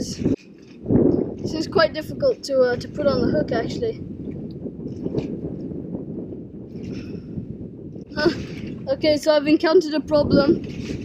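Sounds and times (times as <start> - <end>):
wind rumbling on microphone: 0.0 - 11.0.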